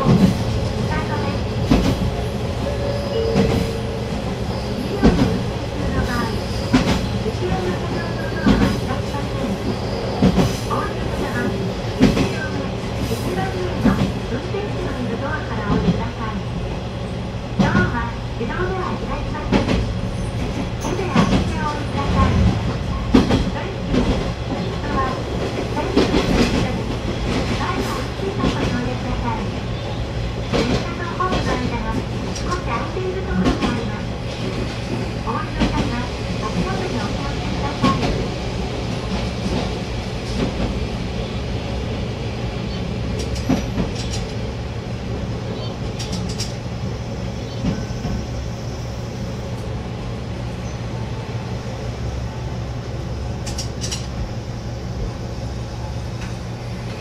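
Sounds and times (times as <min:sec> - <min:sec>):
diesel railcar engine drone: 0:00.0 - 0:57.0
wheels clicking over rail joints: 0:53.4 - 0:54.2.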